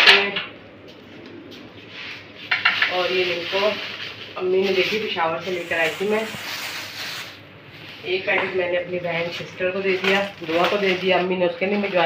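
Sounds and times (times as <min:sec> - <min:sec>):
kitchen room tone: 0:00.0 - 0:12.0
plastic snack packet rustling: 0:02.9 - 0:07.4, 0:08.9 - 0:12.0.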